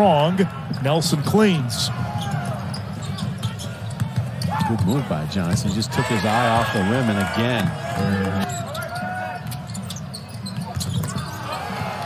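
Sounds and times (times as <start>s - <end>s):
murmur of crowd: 0.0s - 12.0s.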